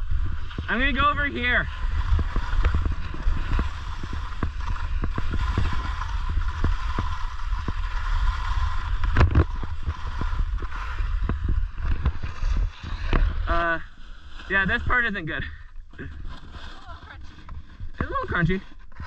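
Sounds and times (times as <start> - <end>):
skis scraping over crusty snow: 0.0 - 19.0.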